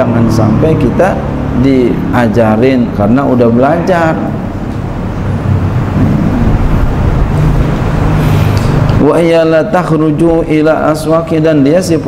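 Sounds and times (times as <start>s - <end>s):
loud low rumbling: 0.0s - 11.2s
steady low hum: 0.0s - 12.0s.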